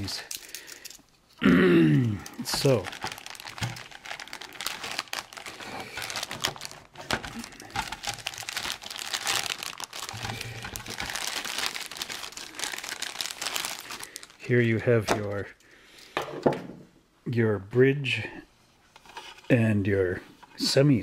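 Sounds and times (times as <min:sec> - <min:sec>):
plastic bag crinkling: 0:02.1 - 0:15.5.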